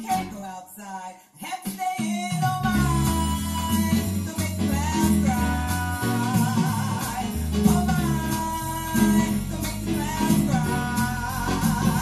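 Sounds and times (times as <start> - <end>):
children's song with guitar: 0.0 - 0.6, 1.6 - 12.0
person singing: 0.0 - 12.0.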